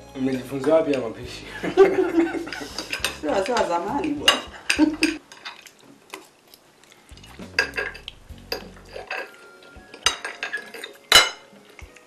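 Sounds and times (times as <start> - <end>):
cutlery clinking on plates: 2.2 - 5.6, 7.6 - 12.0.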